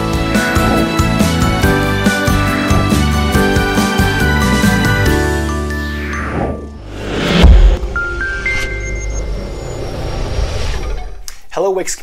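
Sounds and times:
low rumble: 0.3 - 3.6.

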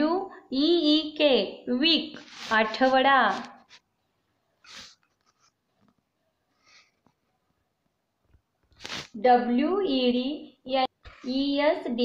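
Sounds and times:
faint short hiss: 4.6 - 5.1, 8.8 - 9.2.

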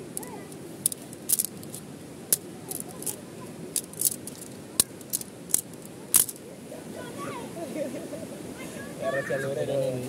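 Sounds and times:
tent poles clicking: 0.0 - 6.4.

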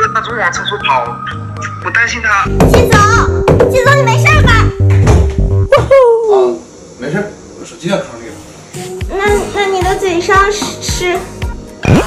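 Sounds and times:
background music: 0.0 - 5.7, 8.4 - 12.0.

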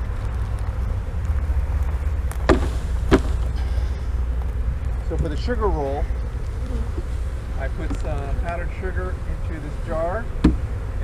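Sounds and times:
steady low rumble: 0.0 - 11.0
wooden frame knocks: 2.5 - 3.4.

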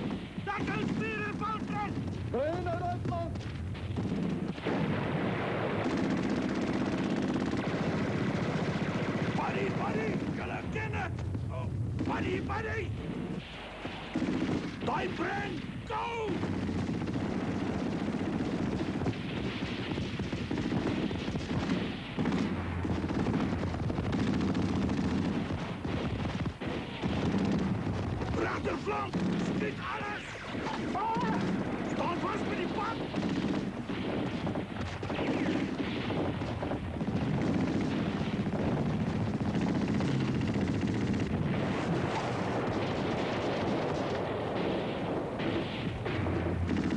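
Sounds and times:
automatic gunfire: 0.0 - 10.6, 14.0 - 15.3, 16.2 - 46.9
rapid rifle shots: 0.0 - 11.0, 11.9 - 46.9.

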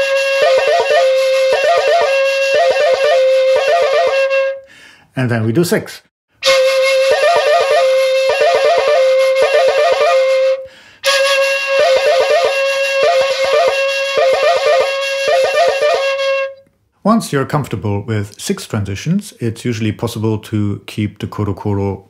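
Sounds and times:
bamboo flute playing: 0.0 - 4.7, 6.4 - 16.6.

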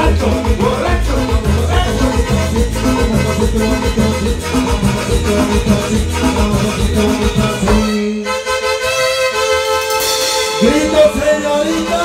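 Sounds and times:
bass and percussion beat: 0.0 - 8.1
live dance band music: 0.0 - 12.0.

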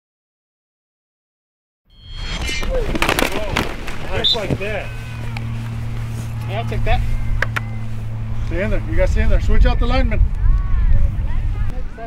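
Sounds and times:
players shouting: 2.6 - 8.8
steady low hum: 3.6 - 11.9.

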